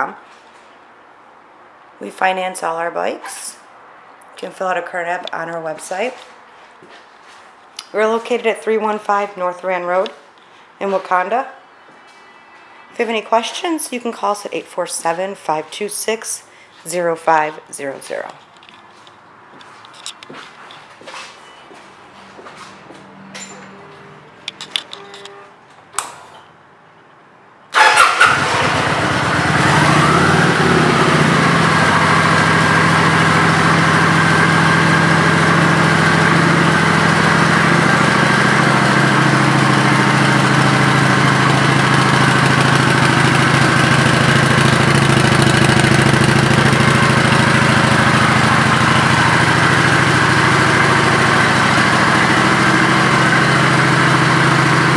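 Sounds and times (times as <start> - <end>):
motorcycle engine starting and idling: 27.7 - 54.9.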